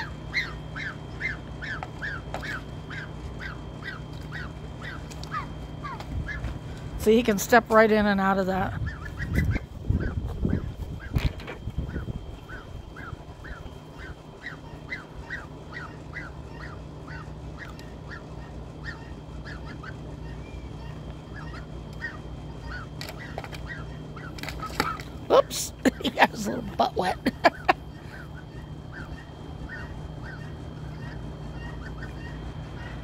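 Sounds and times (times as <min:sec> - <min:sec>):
goose honking: 0:00.0 - 0:06.6, 0:11.9 - 0:33.0.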